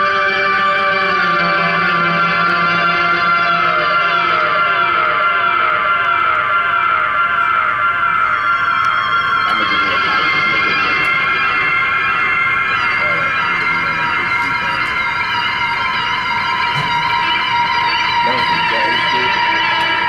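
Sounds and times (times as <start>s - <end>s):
electric guitar with effects: 0.0s - 20.0s
falling pitch glides: 0.0s - 20.0s.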